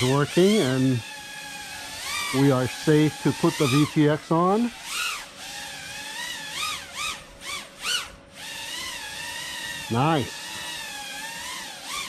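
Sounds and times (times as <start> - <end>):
quadcopter motors whining: 0.0 - 12.0.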